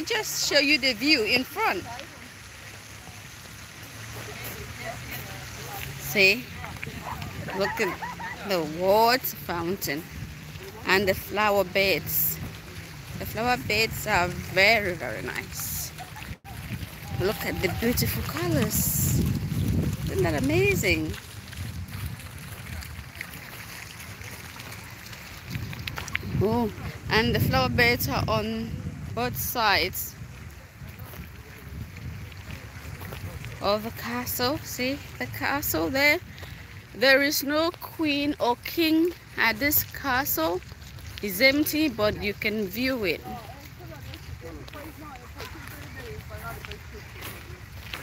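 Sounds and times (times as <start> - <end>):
wind on microphone: 0.0 - 48.0.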